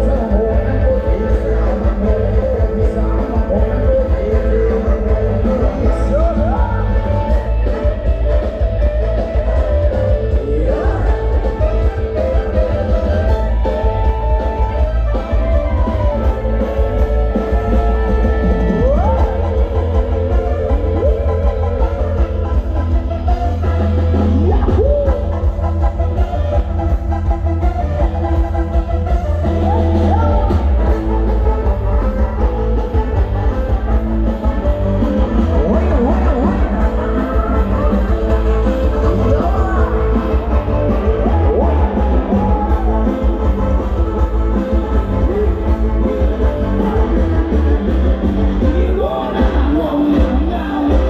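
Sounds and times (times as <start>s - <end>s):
drum kit: 0.0s - 51.0s
electric guitars: 0.0s - 51.0s
heavy bass: 0.0s - 51.0s
live band playing dance music: 0.0s - 51.0s.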